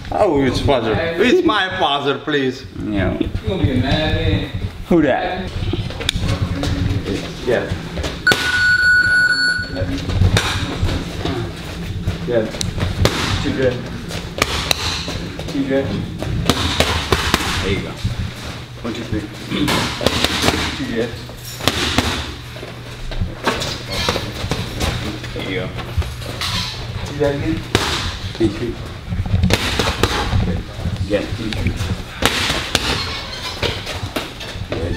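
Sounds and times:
long electronic timer beep: 0:08.3 - 0:09.8
boxing gloves smacking mitts: 0:14.4 - 0:15.2, 0:16.4 - 0:17.8, 0:19.6 - 0:20.8, 0:21.6 - 0:22.4, 0:29.4 - 0:30.5.

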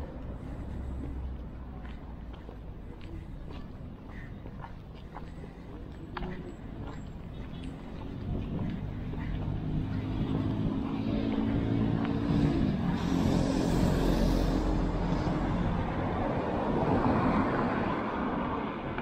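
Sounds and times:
street traffic: 0:00.0 - 0:19.0
vehicle engine approaching: 0:05.2 - 0:19.0.

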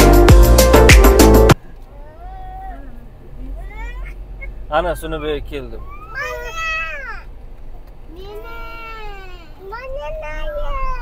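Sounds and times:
car interior hum: 0:01.5 - 0:11.0
child calling out: 0:02.0 - 0:03.0, 0:03.6 - 0:04.6, 0:05.8 - 0:07.3, 0:08.2 - 0:11.0
child shouting: 0:03.6 - 0:04.2, 0:05.8 - 0:07.3, 0:08.1 - 0:11.0.

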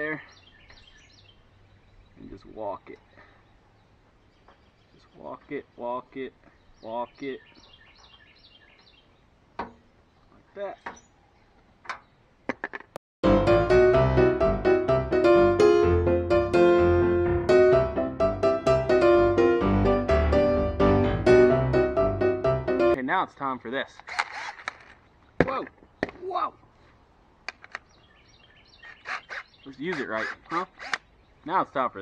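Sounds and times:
quiet outdoor background noise: 0:00.0 - 0:13.0, 0:23.0 - 0:32.0
sharp knocks: 0:09.6 - 0:09.8.

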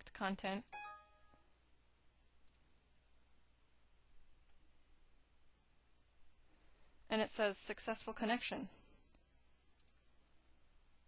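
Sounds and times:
computer mouse clicks: 0:02.4 - 0:02.7, 0:09.8 - 0:10.0.

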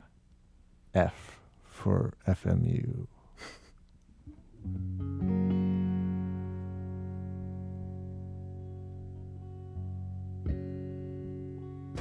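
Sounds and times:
person laughing: 0:03.4 - 0:03.8.

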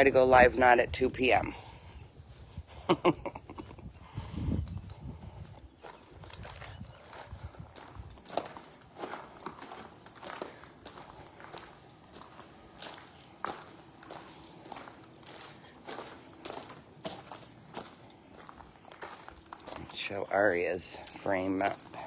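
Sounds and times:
footsteps crunching on gravel: 0:05.0 - 0:22.0.

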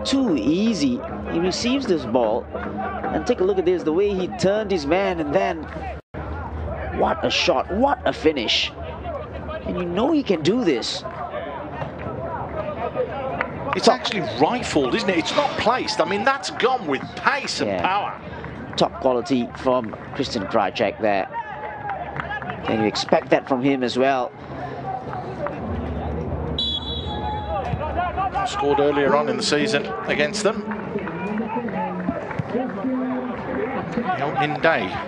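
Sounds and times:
players and spectators shouting: 0:00.0 - 0:18.2, 0:18.9 - 0:35.0
stadium crowd rumble: 0:00.0 - 0:35.0
referee's whistle blast: 0:26.6 - 0:27.6.

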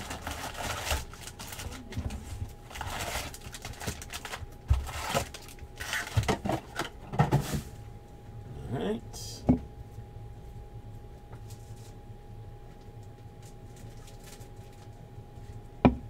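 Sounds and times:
card packs rustling and crinkling: 0:00.0 - 0:07.0, 0:13.0 - 0:15.6.

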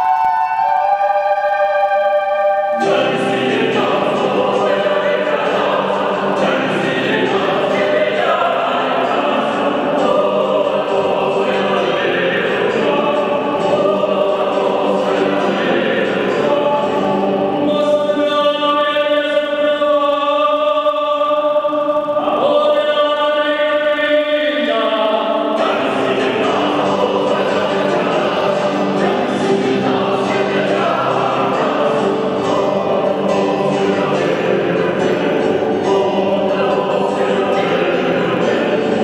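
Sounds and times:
mixed choir singing: 0:00.0 - 0:39.0.

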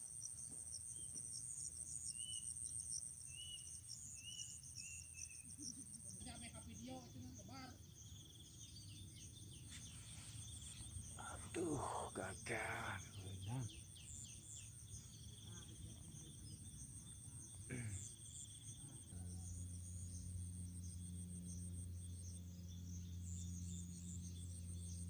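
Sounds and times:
insects chirring: 0:00.0 - 0:25.0
low steady hum: 0:01.4 - 0:25.0.

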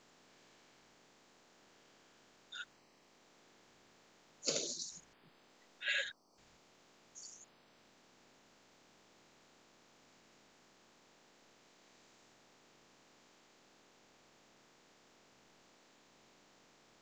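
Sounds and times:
faint breathy vocal sounds: 0:04.4 - 0:05.0, 0:05.8 - 0:06.2.

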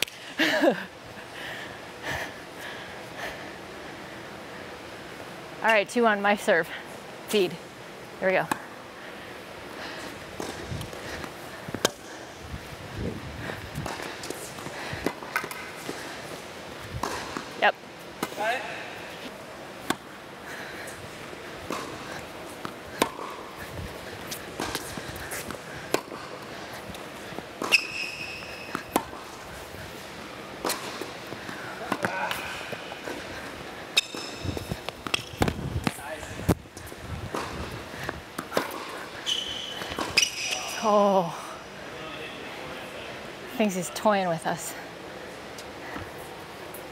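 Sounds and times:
tennis balls bouncing on hard court: 0:10.3 - 0:12.3, 0:13.8 - 0:17.6, 0:19.8 - 0:20.1, 0:21.1 - 0:40.8
tennis balls struck by racquets: 0:10.3 - 0:12.3, 0:16.9 - 0:18.6, 0:19.6 - 0:20.2, 0:21.2 - 0:40.8
tennis shoes squeaking: 0:21.7 - 0:37.7, 0:38.4 - 0:40.8.

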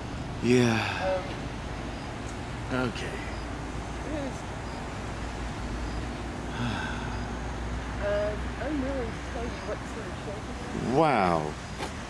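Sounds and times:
vehicle low rumble: 0:00.0 - 0:12.0.

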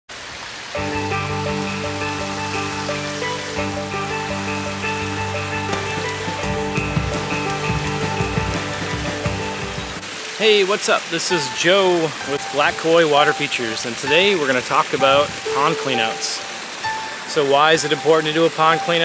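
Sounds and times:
running water and waterfall: 0:00.1 - 0:19.0
instrumental music with sustained chords: 0:00.8 - 0:10.1.

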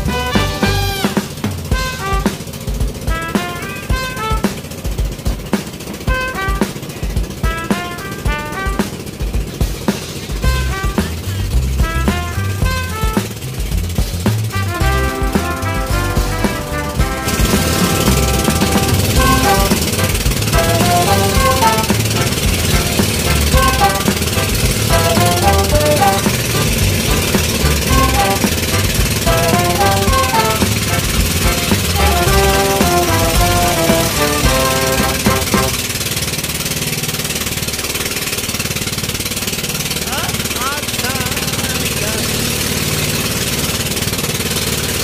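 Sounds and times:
boat engine chugging: 0:00.0 - 0:45.0
melodic background music: 0:14.6 - 0:35.8.

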